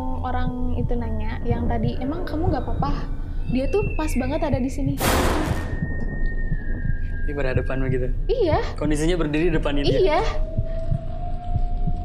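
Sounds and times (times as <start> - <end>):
low heartbeat-like thumping: 0.0 - 12.0.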